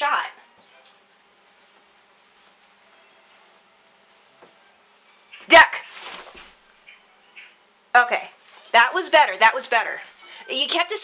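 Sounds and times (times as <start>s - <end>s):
clothing rustling: 0.8s - 4.6s, 5.4s - 6.7s.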